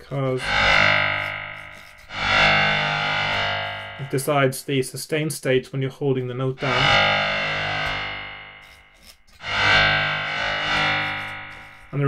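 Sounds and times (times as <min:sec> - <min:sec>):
synthesizer bowed-string notes: 0:00.0 - 0:04.6, 0:06.6 - 0:12.0.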